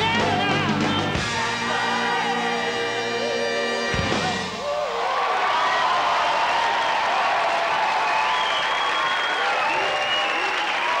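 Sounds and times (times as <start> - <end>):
audience applauding: 5.0 - 11.0.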